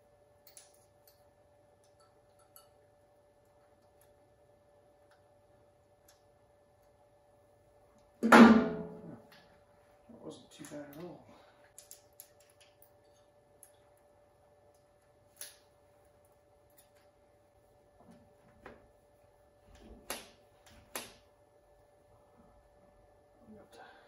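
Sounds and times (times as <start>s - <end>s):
faint clicks of parts handled: 10.5s - 14.1s, 14.7s - 17.2s.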